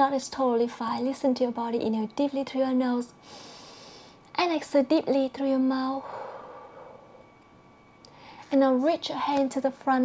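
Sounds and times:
woman exhaling deeply: 6.0 - 7.2.

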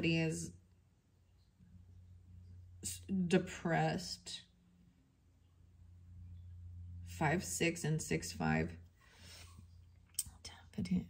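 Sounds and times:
woman speaking: 0.0 - 0.6, 2.8 - 4.5, 7.1 - 8.8, 10.2 - 11.0
woman whispering: 10.2 - 11.0.

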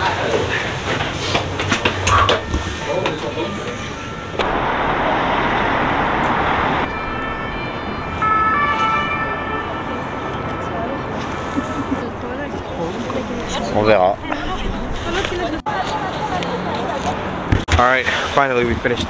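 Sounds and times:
footsteps on stone stairs: 0.0 - 3.2
city traffic: 0.0 - 19.0
wind: 0.0 - 19.0
emergency vehicle siren: 2.0 - 12.2.

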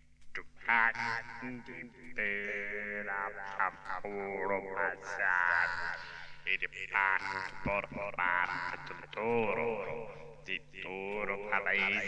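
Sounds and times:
electronically processed voice: 0.4 - 12.0.

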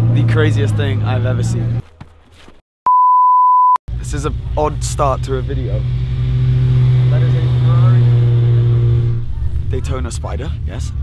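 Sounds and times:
electronic beep: 2.9 - 3.8.

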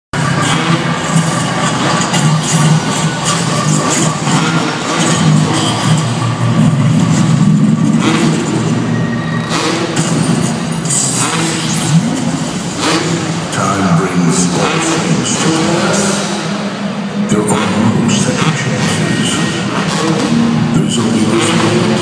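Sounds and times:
dirt bike engines revving: 0.2 - 22.0
loud music: 0.2 - 22.0.

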